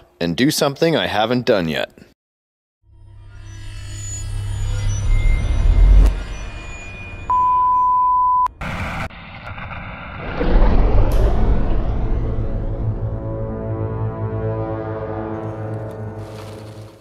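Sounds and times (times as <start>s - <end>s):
steady beep: 5.0s - 8.6s
low rumble: 8.5s - 14.2s
deep rumbling swell: 8.6s - 15.0s.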